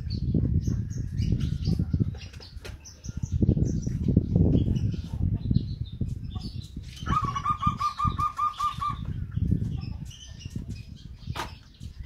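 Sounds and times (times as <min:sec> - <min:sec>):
dove cooing: 0:07.1 - 0:09.0.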